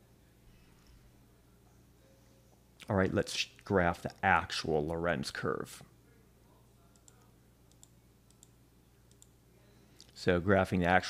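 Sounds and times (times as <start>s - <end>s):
faint computer mouse clicks: 6.9s - 9.3s.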